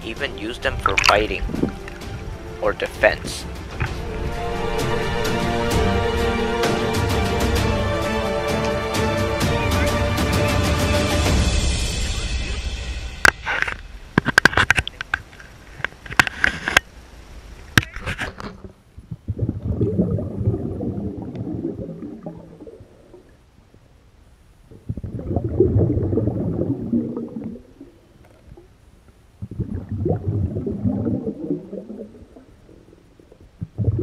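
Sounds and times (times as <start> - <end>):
muffled underwater gurgling: 0.0 - 5.3, 17.8 - 24.0, 24.6 - 34.0.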